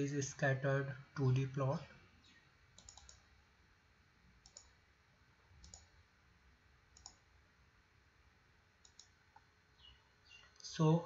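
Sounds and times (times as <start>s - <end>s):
computer mouse clicks: 2.7s - 3.3s, 4.4s - 4.8s, 5.6s - 6.0s, 6.9s - 7.3s, 8.8s - 9.5s.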